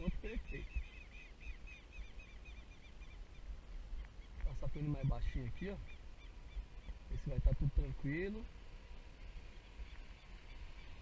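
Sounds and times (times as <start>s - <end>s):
bird chirping rapidly: 0.0s - 7.3s.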